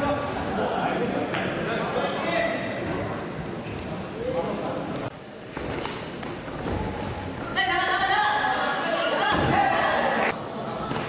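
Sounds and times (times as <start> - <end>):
voices echoing in sports hall: 0.0 - 11.0.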